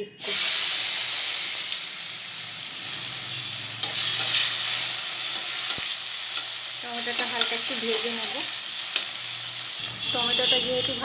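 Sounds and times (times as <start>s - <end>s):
tomatoes sizzling in hot oil: 0.2s - 11.0s.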